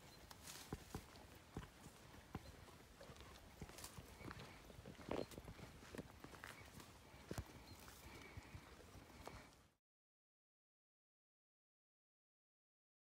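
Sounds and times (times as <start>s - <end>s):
horse hooves clopping: 0.0s - 9.6s.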